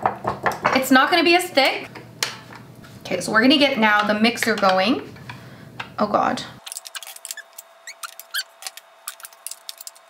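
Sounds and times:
mixer beaters clicking and rattling: 6.6s - 10.0s.

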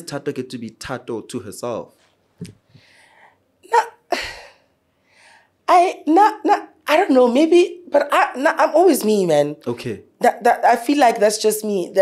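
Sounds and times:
soft breath in: 2.7s - 3.4s.

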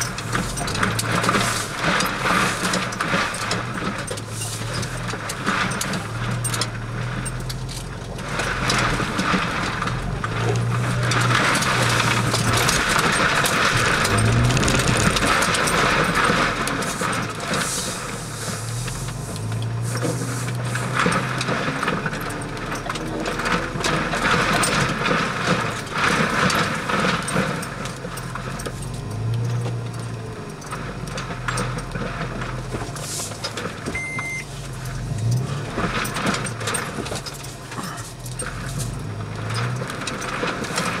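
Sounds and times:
car engine drone: 0.0s - 41.0s
tyre and cabin noise: 0.0s - 41.0s.

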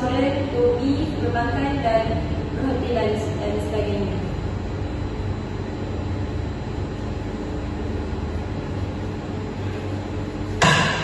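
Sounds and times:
room hum and rumble: 0.0s - 11.0s.

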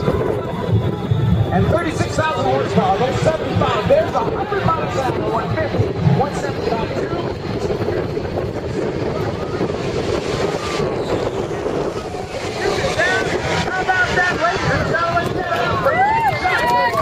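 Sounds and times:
crowd voices: 0.0s - 17.0s
jet engine roaring: 0.0s - 17.0s.

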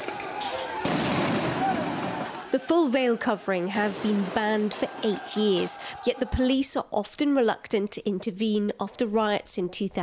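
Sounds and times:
sharp bangs: 0.0s - 2.5s
distant crowd shouting: 0.0s - 6.8s.

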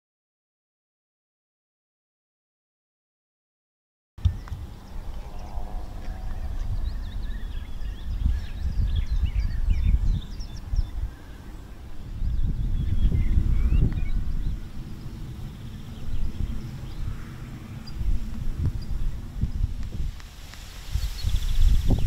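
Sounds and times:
small birds chirping: 4.2s - 22.0s
wind buffeting microphone: 4.2s - 22.0s.

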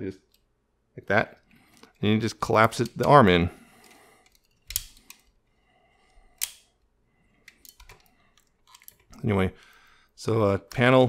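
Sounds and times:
plastic toy clicks and snaps: 4.3s - 5.2s, 6.4s - 6.7s.

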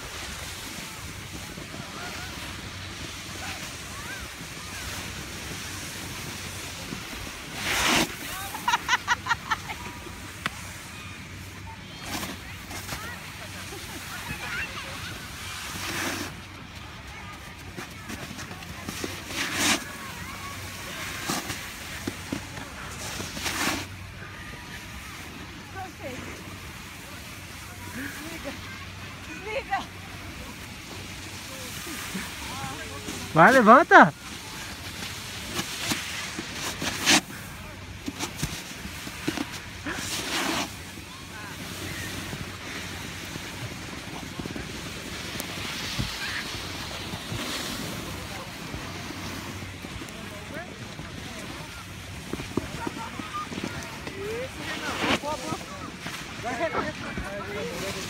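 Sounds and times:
faint voices: 0.0s - 58.0s
snowboard scraping over snow: 0.0s - 58.0s.

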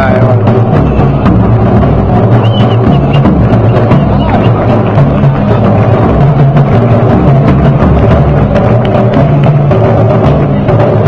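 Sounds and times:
bass drum beat: 0.0s - 11.0s
marching band deep held notes: 0.0s - 11.0s.

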